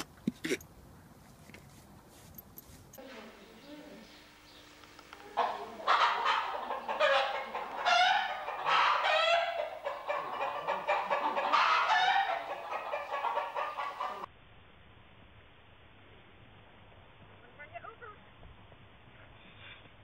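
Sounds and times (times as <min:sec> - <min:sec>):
chicken calling: 0:03.0 - 0:14.3.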